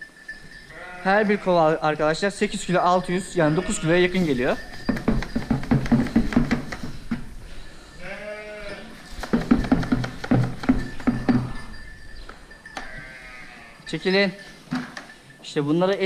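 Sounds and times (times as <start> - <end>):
sheep bleating: 0.7 - 1.8, 3.2 - 4.3, 8.0 - 9.0, 12.8 - 13.9.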